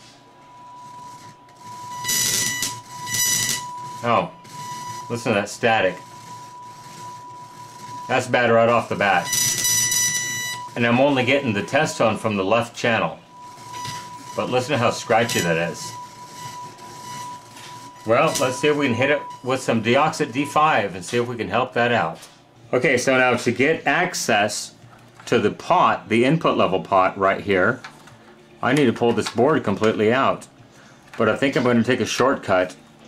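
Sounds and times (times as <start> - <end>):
steady test tone: 0.0 - 22.1
loud scratchy static: 0.8 - 24.6.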